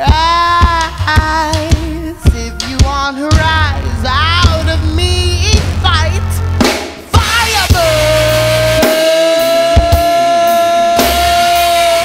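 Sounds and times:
drum kit: 0.0 - 12.0
sharp drum hits: 3.3 - 9.0.

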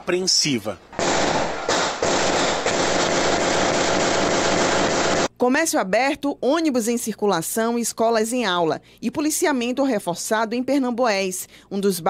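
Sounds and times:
rapid gunfire: 1.0 - 5.3.

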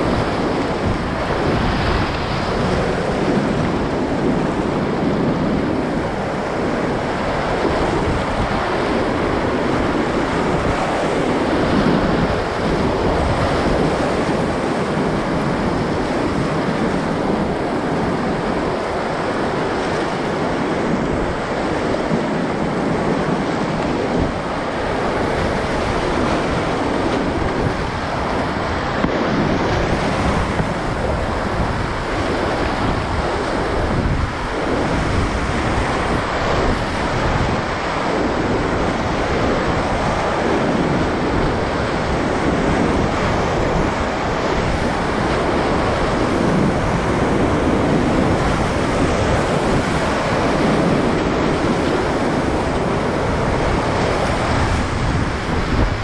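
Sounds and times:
water buffeting the camera: 0.0 - 56.0
whitewater rapids rushing: 0.0 - 56.0.

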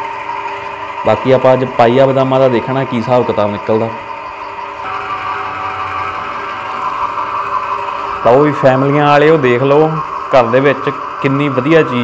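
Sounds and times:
oil press motor humming: 0.0 - 12.0.

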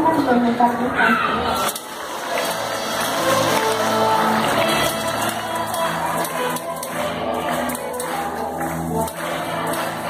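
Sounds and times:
orchestra bowed strings: 1.6 - 10.0.

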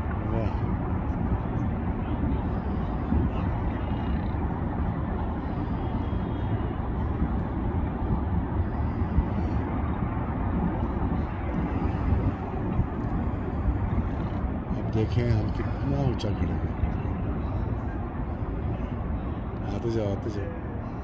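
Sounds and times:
steady low rumbling noise: 0.0 - 21.0.

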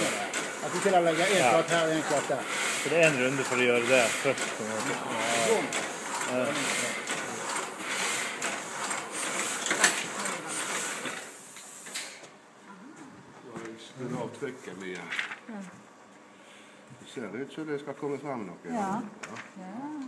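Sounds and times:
printing press clattering: 0.0 - 11.4
printing press hiss: 0.0 - 12.3.

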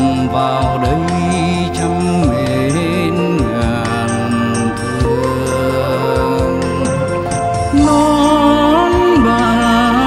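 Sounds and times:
gliding melodic notes: 0.0 - 10.0
low bass line: 0.0 - 10.0.

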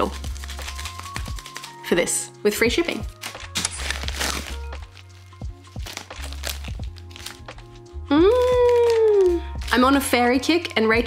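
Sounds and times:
plastic and paper packaging crinkling: 0.0 - 11.0
soft background music: 0.0 - 11.0.

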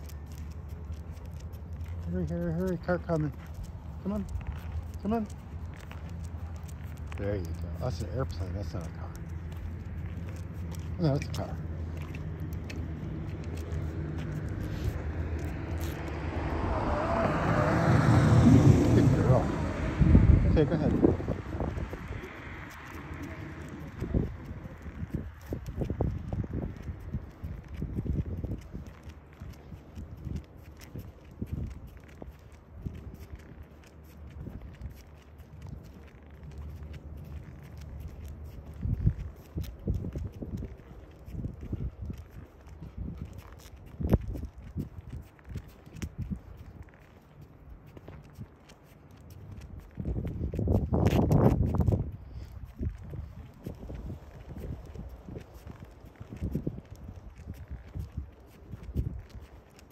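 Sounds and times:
footsteps on concrete sidewalk: 0.0 - 59.9
rush of noise: 12.0 - 24.7.

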